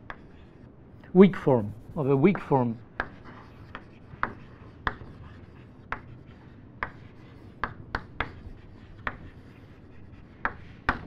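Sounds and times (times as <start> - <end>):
chalk tapping on blackboard: 0.0 - 0.6, 1.3 - 11.0
chalk scratching: 0.0 - 11.0.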